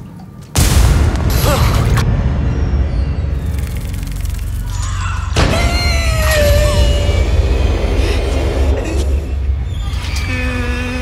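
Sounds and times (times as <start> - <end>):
low rumbling drone: 0.6 - 11.0.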